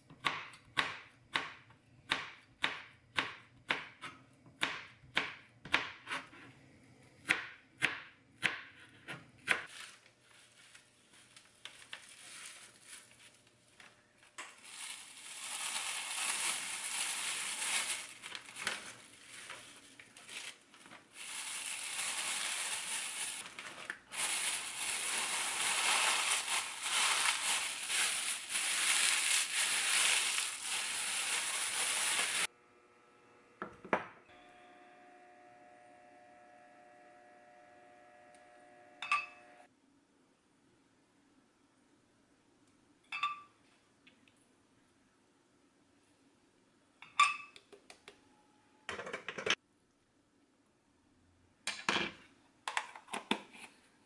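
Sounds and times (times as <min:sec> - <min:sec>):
crackling and rustling plastic bag: 0:09.7 - 0:32.5.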